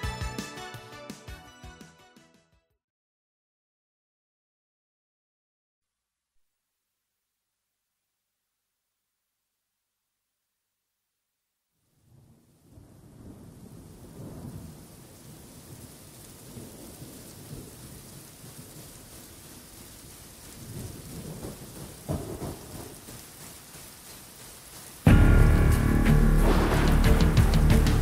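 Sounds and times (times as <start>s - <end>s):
pop song music: 0.0s - 2.2s, 25.1s - 28.0s
steady rain: 11.8s - 28.0s
sharp thunderclap: 12.1s - 18.0s, 20.6s - 23.1s, 25.1s - 28.0s
rumbling thunder: 12.1s - 19.3s, 20.5s - 23.2s, 25.1s - 28.0s.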